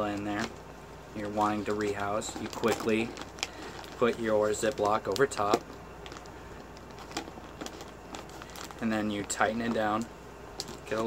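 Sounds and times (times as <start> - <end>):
plastic bag crinkling: 1.2 - 11.0.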